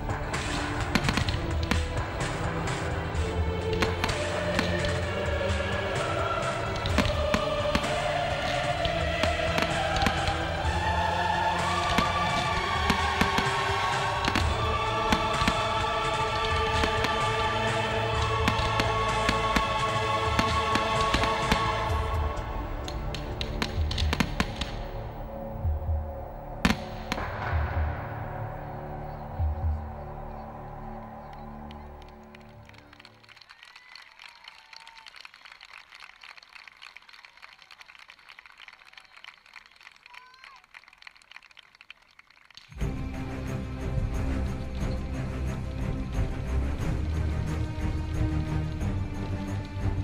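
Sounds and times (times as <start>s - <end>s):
fireworks bursting and crackling: 0.0s - 25.3s, 26.6s - 28.8s.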